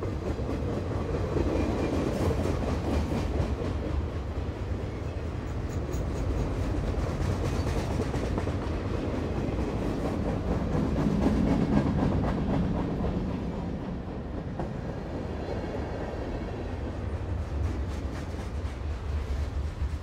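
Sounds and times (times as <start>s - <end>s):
train wheels rumbling on track: 0.0s - 20.0s.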